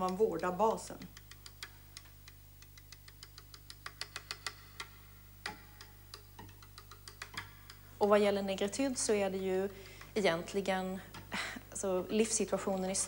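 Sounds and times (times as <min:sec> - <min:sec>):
low steady hum: 0:00.0 - 0:13.0
faint irregular clicks: 0:01.0 - 0:07.9.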